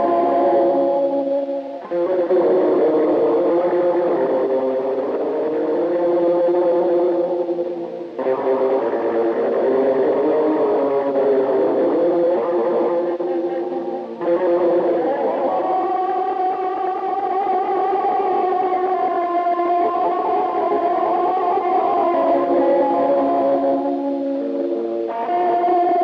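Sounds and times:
electric guitar melody: 0.0s - 26.0s.

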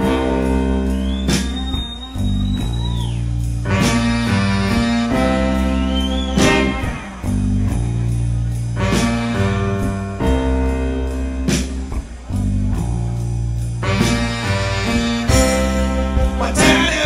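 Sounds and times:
bass line: 0.0s - 17.0s
drum beat: 1.0s - 10.5s, 11.5s - 17.0s.

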